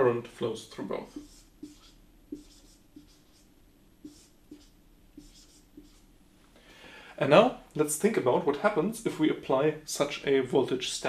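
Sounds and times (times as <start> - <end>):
marker pen writing on whiteboard: 0.8 - 6.1.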